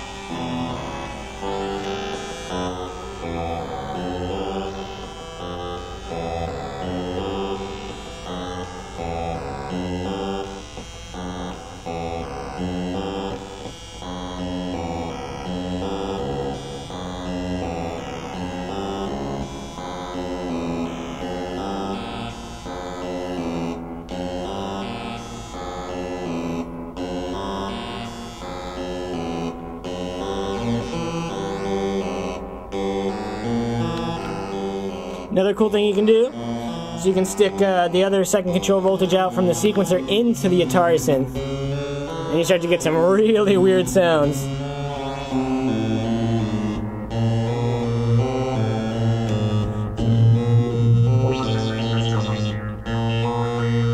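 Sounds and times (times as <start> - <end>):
looping stepped synth notes: 0.0 - 53.9.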